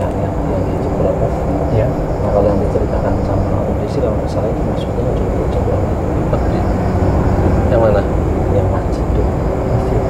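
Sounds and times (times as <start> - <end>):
low traffic rumble: 0.0 - 10.0
low voices: 0.0 - 10.0.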